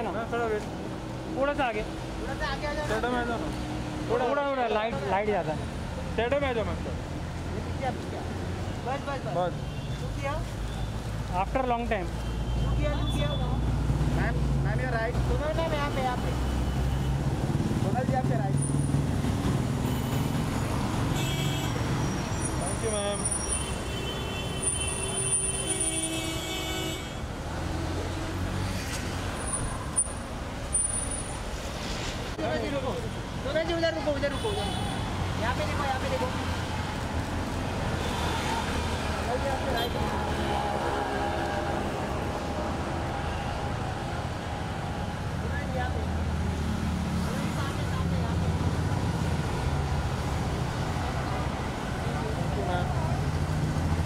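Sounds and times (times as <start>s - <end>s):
street traffic: 0.0s - 54.0s.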